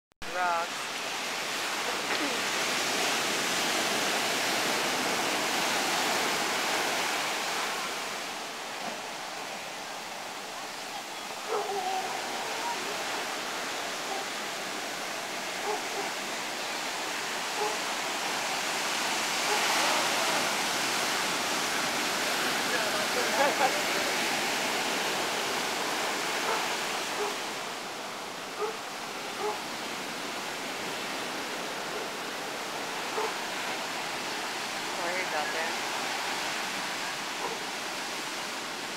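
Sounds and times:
ocean surf breaking: 0:00.2 - 0:38.9.

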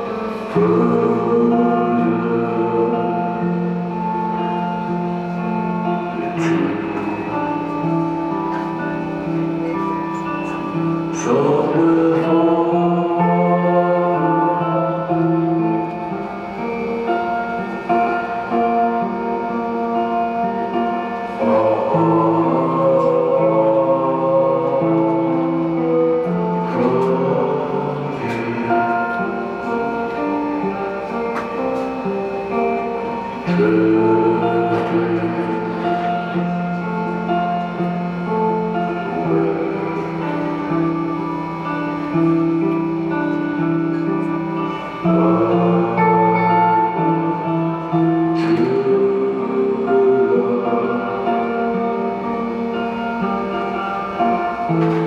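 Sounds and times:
electric guitar chords: 0:00.0 - 0:55.0
keyboard chords: 0:00.0 - 0:55.0
man singing into a microphone: 0:00.0 - 0:55.0.

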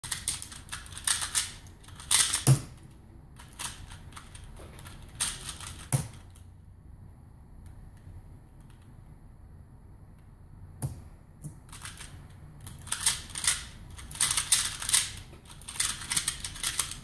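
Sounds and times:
rapid plastic clicking of cube: 0:00.0 - 0:06.5, 0:11.5 - 0:17.0.

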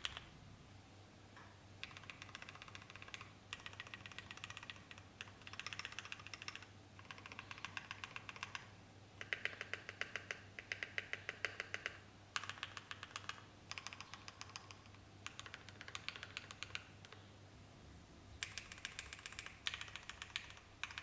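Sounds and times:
fast typing on mechanical keyboard: 0:01.8 - 0:16.9, 0:18.4 - 0:21.0.

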